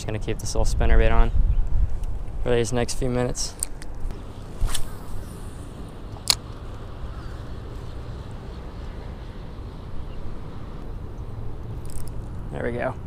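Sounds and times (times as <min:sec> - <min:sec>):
wind rumbling on microphone: 0:00.0 - 0:13.0
sharp click: 0:06.2 - 0:06.6.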